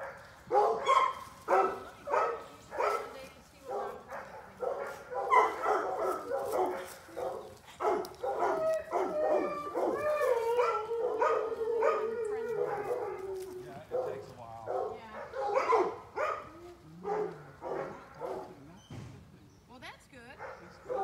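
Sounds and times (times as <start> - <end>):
dog barking and yelping: 0.0 - 3.1, 3.7 - 18.7, 20.4 - 21.0
dog's long wavering cry: 8.3 - 13.8.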